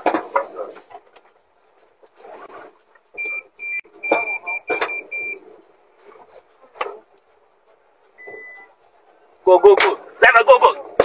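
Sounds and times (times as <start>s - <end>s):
faint voices: 1.6s - 11.0s
lower beep: 3.2s - 5.4s
short high electronic beeps: 3.2s - 5.4s.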